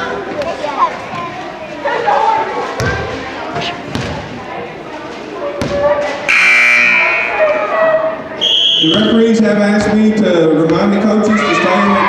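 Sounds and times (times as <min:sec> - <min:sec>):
crowd chatter: 0:00.0 - 0:12.0
loud scoreboard buzzer: 0:06.3 - 0:07.6.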